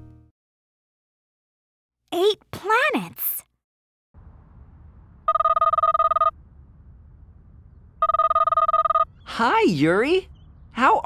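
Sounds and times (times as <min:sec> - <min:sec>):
faint low hum: 0:04.2 - 0:10.8
smartphone ringing: 0:05.3 - 0:06.4, 0:08.0 - 0:09.1.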